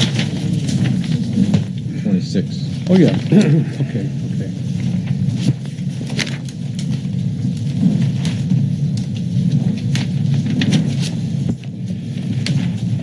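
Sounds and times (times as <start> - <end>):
low rumble of room noise: 0.0 - 13.0
paper rustling: 0.0 - 13.0.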